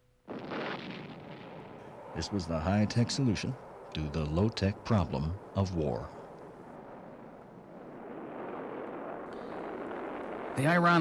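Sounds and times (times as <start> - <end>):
rocket engine roaring: 0.3 - 11.0.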